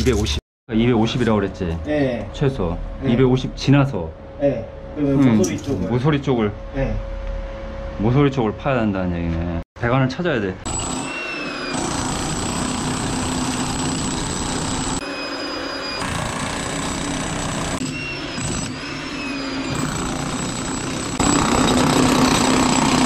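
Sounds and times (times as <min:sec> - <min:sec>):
demolition hammer chiselling concrete: 0:10.7 - 0:15.1, 0:16.0 - 0:23.0.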